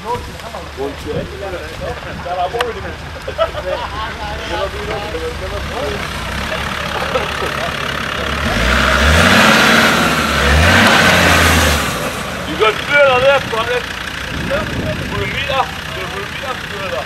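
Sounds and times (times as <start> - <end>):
voices shouting: 2.0 - 17.0
loud rush of noise: 3.8 - 16.3
engine revving hard driving past: 4.4 - 16.5.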